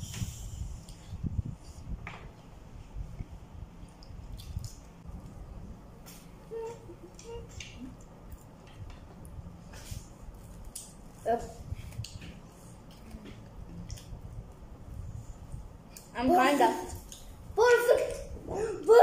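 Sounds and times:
person humming: 0:06.4 - 0:08.0
children chewing: 0:06.5 - 0:09.2.

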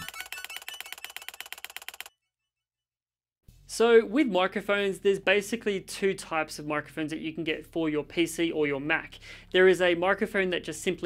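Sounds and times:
fast percussive ticks: 0:00.0 - 0:02.1.

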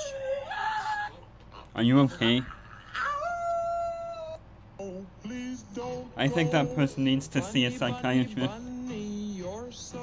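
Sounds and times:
person howling like a wolf: 0:00.0 - 0:01.2, 0:02.8 - 0:04.4.

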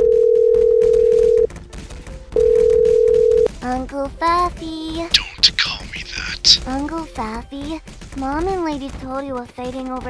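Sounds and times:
telephone ringback tone: 0:00.0 - 0:01.5, 0:02.4 - 0:03.5.

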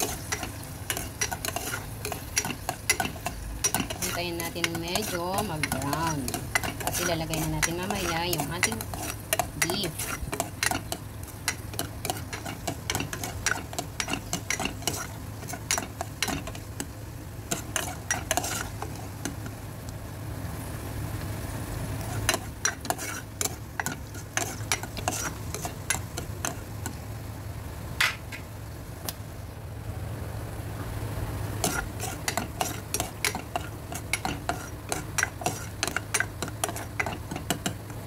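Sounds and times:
spatula scraping a pot: 0:00.0 - 0:16.9, 0:17.5 - 0:19.4, 0:22.0 - 0:26.9, 0:31.6 - 0:37.8
onions sizzling in oil: 0:00.0 - 0:27.6, 0:31.3 - 0:38.0.

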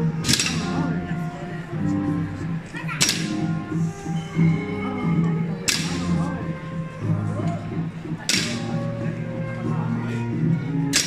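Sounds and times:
brass ensemble music: 0:00.0 - 0:11.0
sharp cracks: 0:05.6 - 0:06.1, 0:08.2 - 0:08.7.

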